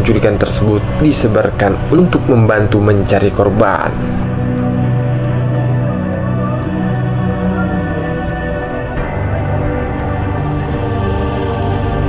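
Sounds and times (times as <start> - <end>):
slow sustained chords: 0.0 - 12.0.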